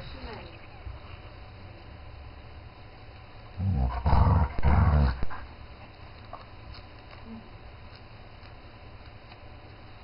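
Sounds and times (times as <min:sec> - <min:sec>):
dog growling: 0:03.6 - 0:05.6.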